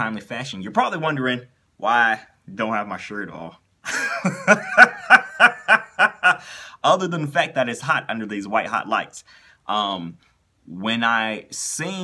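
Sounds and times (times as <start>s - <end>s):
man laughing: 3.8s - 6.6s.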